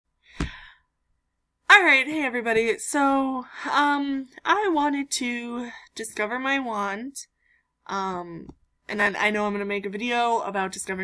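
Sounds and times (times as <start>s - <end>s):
woman speaking: 1.7s - 7.2s, 7.9s - 11.0s.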